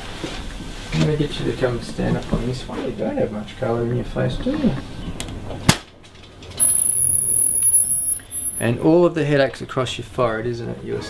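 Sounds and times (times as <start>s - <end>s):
low hum: 6.5s - 8.7s
faint high-pitched whine: 6.6s - 9.0s.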